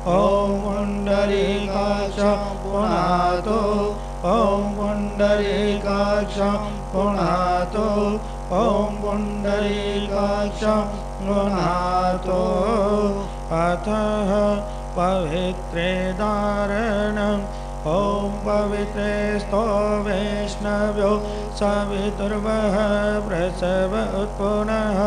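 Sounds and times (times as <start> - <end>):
men chanting: 0.0 - 25.0
steady drone: 0.0 - 25.0.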